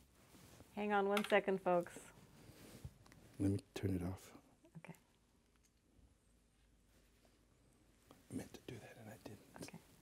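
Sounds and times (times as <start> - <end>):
person whispering: 8.3 - 9.8.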